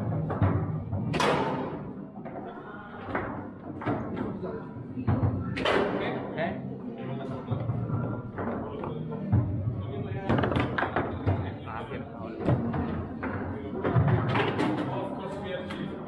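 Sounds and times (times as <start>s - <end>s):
background music: 0.0s - 2.4s, 3.1s - 16.0s
background chatter: 1.6s - 16.0s.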